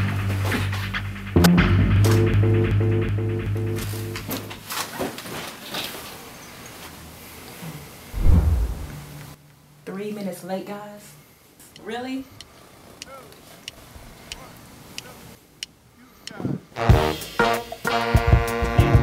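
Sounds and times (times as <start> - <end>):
deep boom: 8.2 - 9.2.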